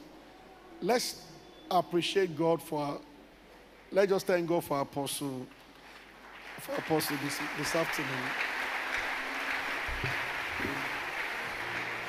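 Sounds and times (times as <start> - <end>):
congregation applauding: 5.5 - 12.0.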